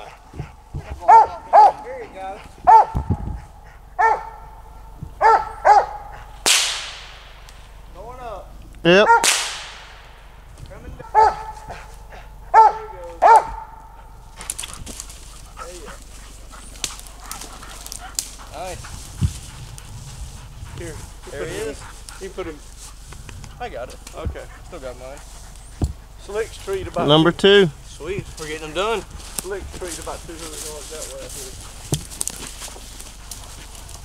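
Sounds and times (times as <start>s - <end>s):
dog barking: 0.0s - 6.4s, 9.0s - 9.3s, 11.0s - 14.2s
gunshot with echo: 6.5s - 7.5s, 9.2s - 10.4s
footsteps in dry leaves: 14.1s - 23.1s, 27.9s - 34.0s.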